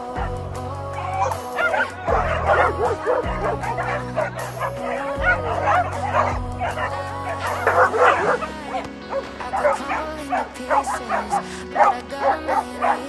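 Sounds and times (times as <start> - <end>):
background music: 0.0 - 13.0
dogs yipping and whining: 0.0 - 13.0.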